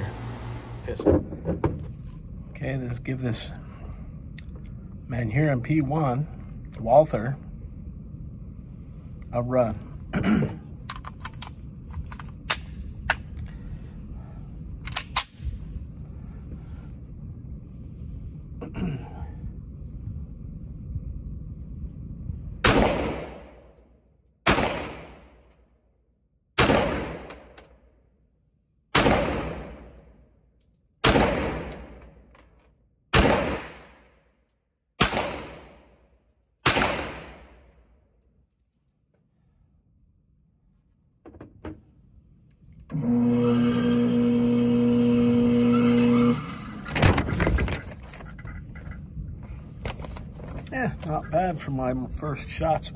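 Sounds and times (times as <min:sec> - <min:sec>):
pistol shots with echo: 0:22.6 - 0:23.6, 0:24.4 - 0:25.4, 0:26.6 - 0:27.6, 0:28.9 - 0:30.0, 0:31.0 - 0:32.0, 0:33.1 - 0:34.1, 0:35.0 - 0:35.9, 0:36.6 - 0:37.6.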